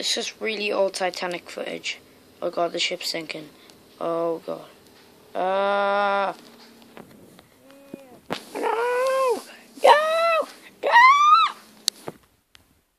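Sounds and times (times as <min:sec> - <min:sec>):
person wailing calls: 0:05.3 - 0:06.4, 0:07.6 - 0:11.6.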